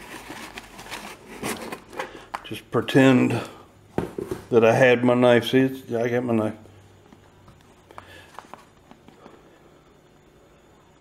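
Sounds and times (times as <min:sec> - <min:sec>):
packing paper rustling: 0:00.0 - 0:02.1.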